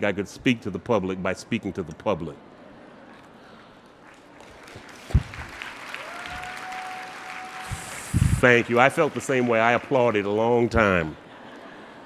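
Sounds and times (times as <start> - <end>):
audience applauding: 4.2 - 10.4.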